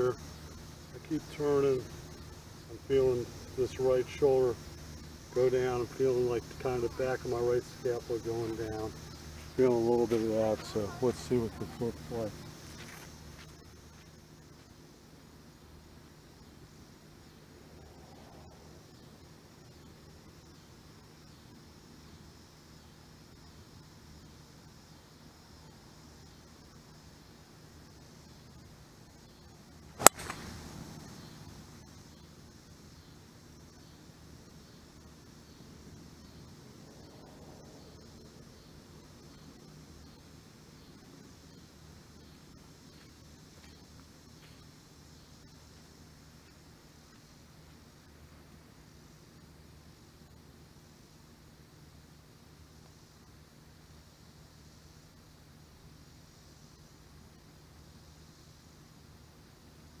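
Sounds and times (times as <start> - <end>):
faint low hum: 0.0 - 60.0
golf club striking ball: 30.0 - 30.6.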